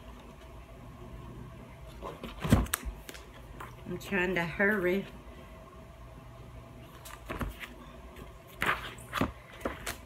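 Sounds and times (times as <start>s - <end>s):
paper sheets flipping: 6.9s - 7.8s, 8.5s - 10.0s.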